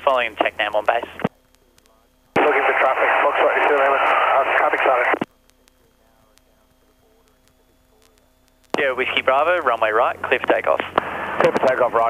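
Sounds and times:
faint intercom hum: 0.0s - 12.0s
voice over aircraft radio: 0.0s - 12.0s.

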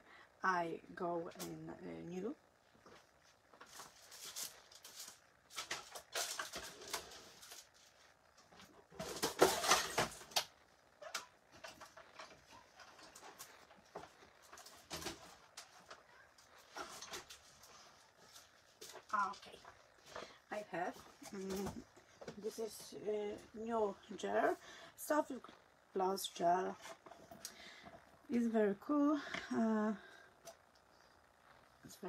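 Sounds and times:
craft supplies rustling and knocking: 8.5s - 10.5s.

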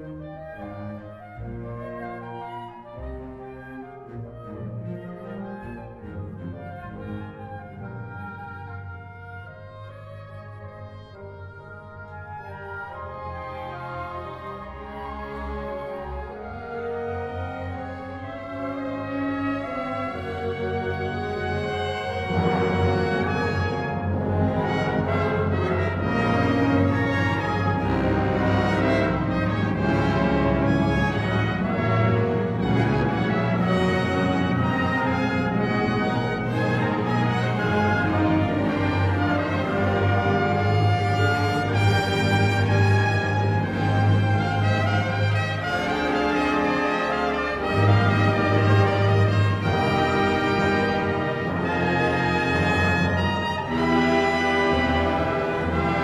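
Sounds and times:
symphony orchestra playing: 0.0s - 56.0s.

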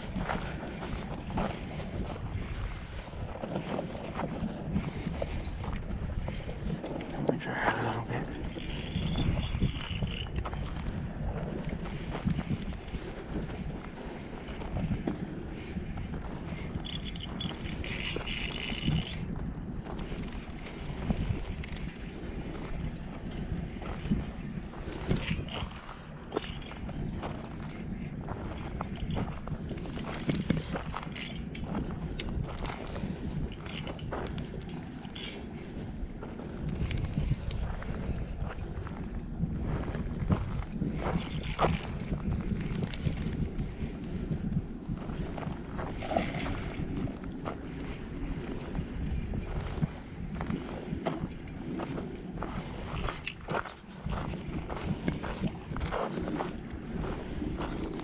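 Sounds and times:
reel and rod ticking and knocking: 0.0s - 58.0s
wind on microphone: 0.0s - 58.0s
fishing reel being cranked: 8.3s - 10.9s, 16.7s - 19.3s, 24.8s - 27.0s, 28.8s - 35.4s, 40.9s - 43.9s, 45.8s - 47.1s.

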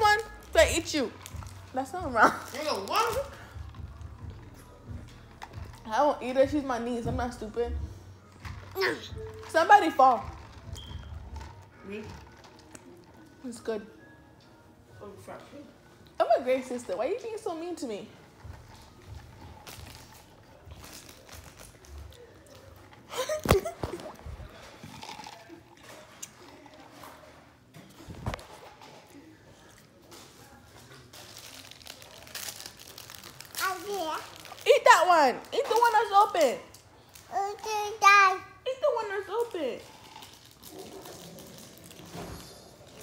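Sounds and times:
child talking: 33.6s - 34.4s, 37.3s - 38.6s.

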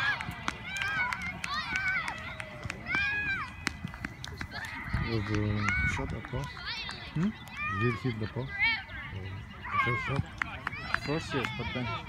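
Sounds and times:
hand claps: 0.0s - 7.6s
high voices shouting and cheering: 0.0s - 12.0s.

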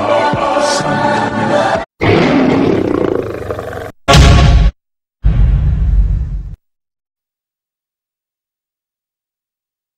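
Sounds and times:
lion roaring: 2.0s - 4.0s.

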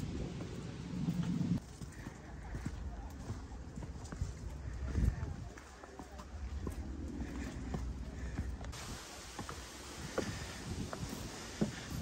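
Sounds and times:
footsteps on rocky trail: 1.6s - 12.0s.

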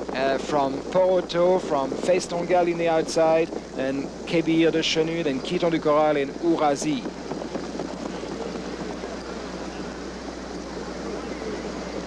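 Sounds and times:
constant low hum: 0.0s - 12.0s
crowd and track noise: 0.0s - 12.0s.

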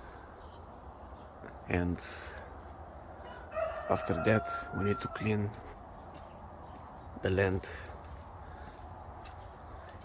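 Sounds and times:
man talking: 1.5s - 2.6s, 3.8s - 5.7s, 7.2s - 8.0s
rooster crowing: 3.2s - 5.6s.

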